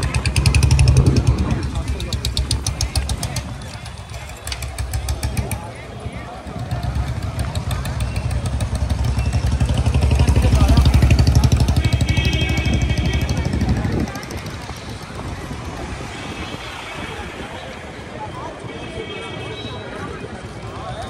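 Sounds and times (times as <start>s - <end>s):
motorbike engine rumble: 0.0s - 18.7s
chatter of passers-by: 0.0s - 21.0s.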